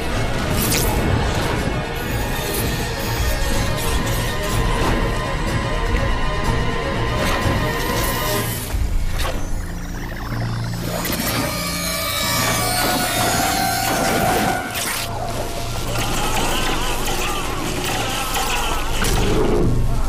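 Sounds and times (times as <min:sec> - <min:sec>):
low drone: 0:00.0 - 0:20.0
sustained tones: 0:03.5 - 0:20.0
wavering gliding tones: 0:07.4 - 0:18.1.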